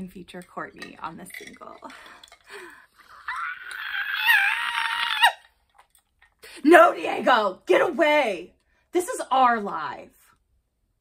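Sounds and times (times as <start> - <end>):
woman shrieking: 3.1 - 5.5.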